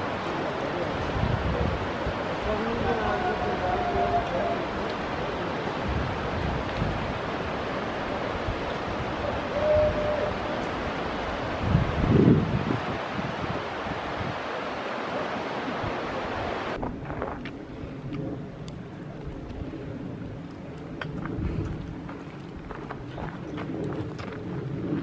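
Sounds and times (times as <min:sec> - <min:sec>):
wind on microphone: 0:00.0 - 0:25.0.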